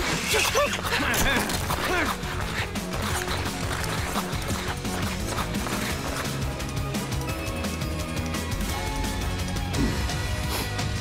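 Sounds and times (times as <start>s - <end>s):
cartoon action background music: 0.0s - 11.0s.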